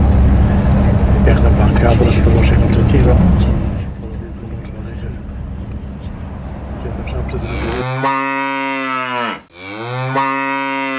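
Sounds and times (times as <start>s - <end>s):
cow mooing: 7.4s - 10.9s.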